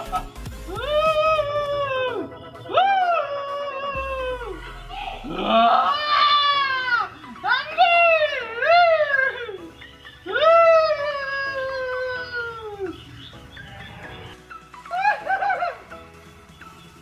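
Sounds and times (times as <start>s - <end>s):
background music: 0.0s - 17.0s
high drawn-out cry: 0.7s - 12.9s.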